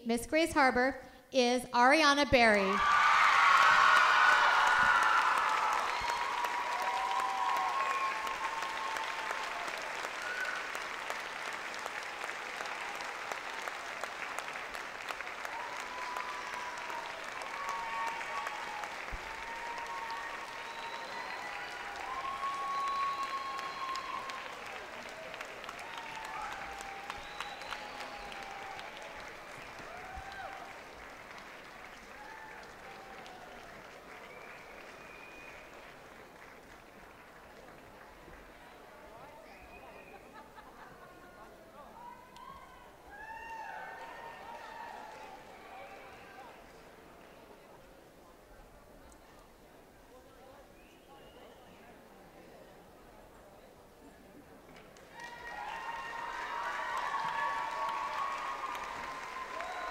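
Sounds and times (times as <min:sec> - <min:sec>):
audience applauding: 0:02.8 - 0:41.4, 0:42.0 - 0:47.6, 0:54.7 - 0:59.9.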